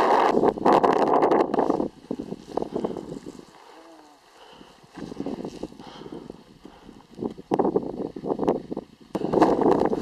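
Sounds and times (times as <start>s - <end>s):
wind buffeting microphone: 0.0s - 3.6s, 4.5s - 10.0s
footsteps on loose rock: 4.9s - 5.8s.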